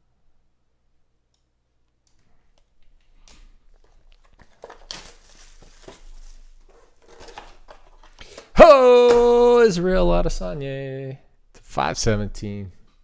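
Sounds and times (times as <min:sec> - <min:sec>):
cardboard and plastic rustling: 0:03.0 - 0:08.6.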